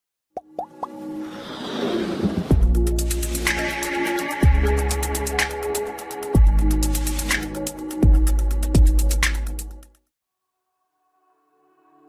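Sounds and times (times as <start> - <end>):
rising plop sound effects: 0.4 - 1.0.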